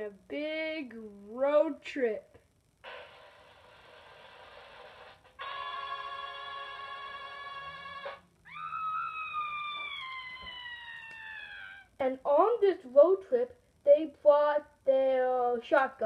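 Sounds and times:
faint hiss: 0.0 - 16.0
steady buzzy tone: 1.1 - 8.8
wailing tone falling in pitch: 5.9 - 11.9.

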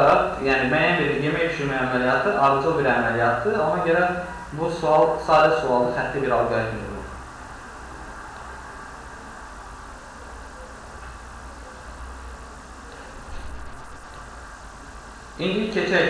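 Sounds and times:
faint hiss: 0.0 - 16.0
low background hum: 0.0 - 16.0.

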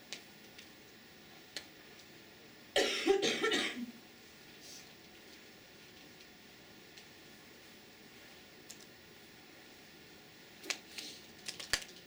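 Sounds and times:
person coughing: 2.8 - 4.0.

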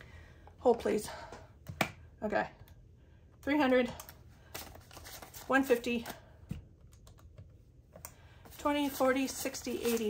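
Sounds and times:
banknotes rustling: 4.0 - 6.4, 8.3 - 10.0.

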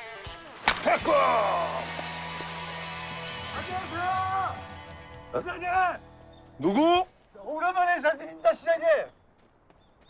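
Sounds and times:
man shouting: 0.8 - 1.8.

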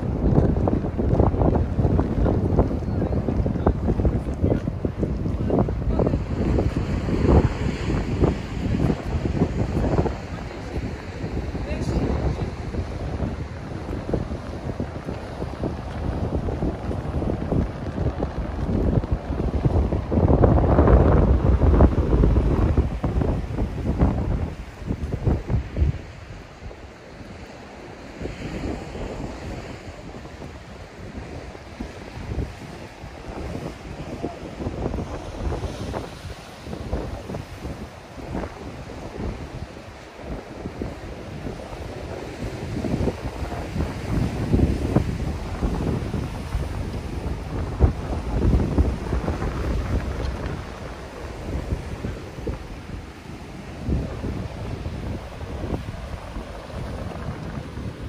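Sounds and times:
ocean surf breaking on rocks: 0.0 - 58.0
wind buffeting microphone: 0.0 - 58.0.

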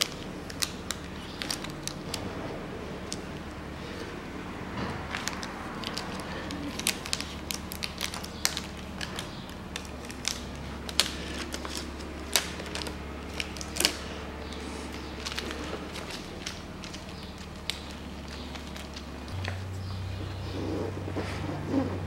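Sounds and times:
plastic film crackling: 0.0 - 21.2
steady low hum: 0.0 - 22.0.

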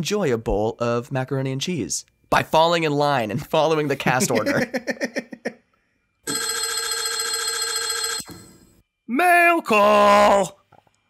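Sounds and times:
laughter: 3.9 - 5.6
telephone bell ringing trill: 6.3 - 8.7.

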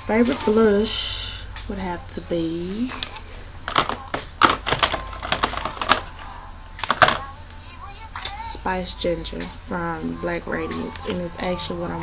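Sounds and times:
makeup cases clicking together: 2.9 - 6.1, 6.8 - 7.3.

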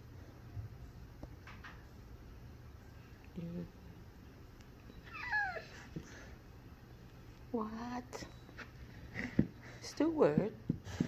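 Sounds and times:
dog whining: 4.9 - 6.3.

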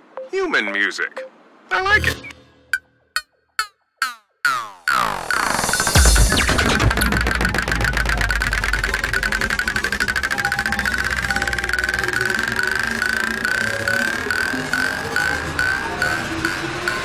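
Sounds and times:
pulsing synthesizer line: 4.9 - 17.0
rising synth sweeps: 4.9 - 17.0
held synth bass: 5.0 - 17.0.

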